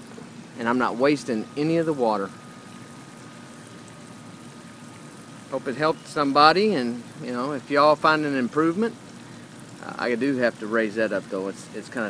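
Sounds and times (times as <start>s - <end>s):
water trickling from drip line: 0.0s - 12.0s.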